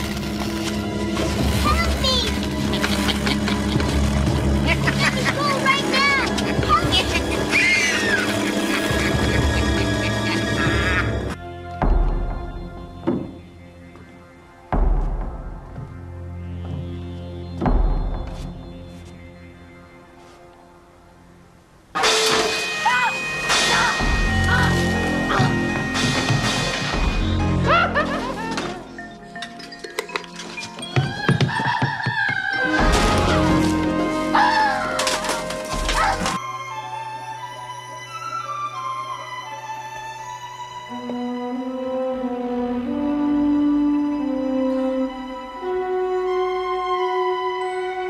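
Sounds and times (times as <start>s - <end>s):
dramatic soundtrack music: 0.0s - 21.4s, 22.0s - 31.3s, 32.5s - 48.0s
girls screaming: 7.3s - 9.0s
short high arching cries: 7.3s - 9.2s.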